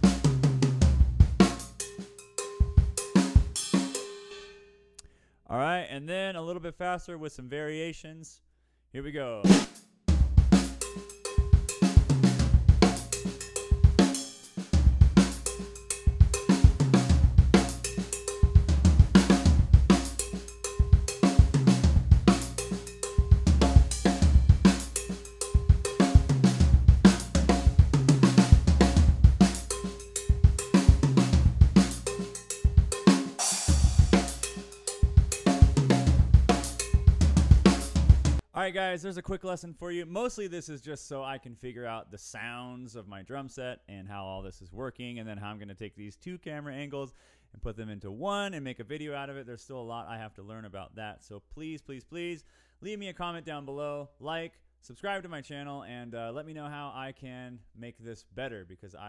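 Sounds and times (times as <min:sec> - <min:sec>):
drum kit playing funk groove: 0:00.0 - 0:04.5, 0:09.5 - 0:38.4
cymbal crash: 0:31.8 - 0:37.1.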